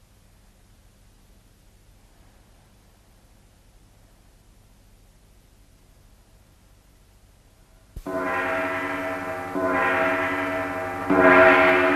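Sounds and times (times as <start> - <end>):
long horns holding low note: 8.1 - 11.9.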